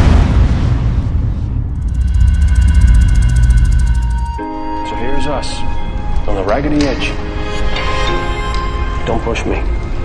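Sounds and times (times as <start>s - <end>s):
deep steady rumble: 1.6s - 4.4s
fast flutter with high tones: 1.8s - 4.4s.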